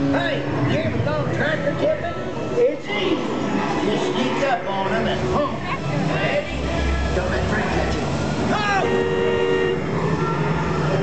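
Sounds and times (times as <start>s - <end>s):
voices: 0.0s - 11.0s
horn-like honk: 8.7s - 9.9s.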